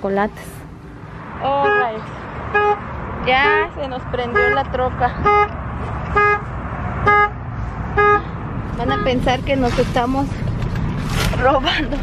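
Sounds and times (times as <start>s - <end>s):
truck horn beeping: 1.6s - 9.9s.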